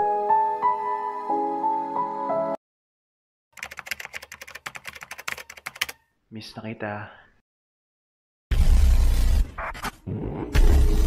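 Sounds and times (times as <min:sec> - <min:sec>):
keyboard typing: 0:03.6 - 0:06.1.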